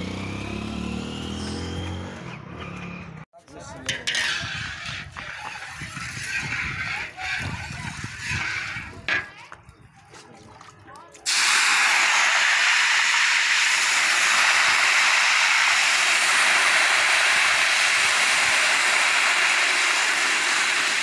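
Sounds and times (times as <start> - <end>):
food sizzling in hot oil: 11.3 - 21.0.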